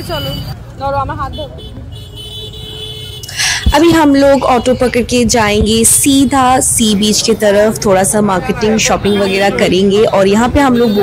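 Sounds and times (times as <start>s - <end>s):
vehicle horn tone: 0.0s - 0.6s, 1.2s - 3.5s, 8.8s - 9.7s, 10.5s - 11.0s
street traffic rumbling: 0.0s - 11.0s
person's voice: 3.4s - 11.0s.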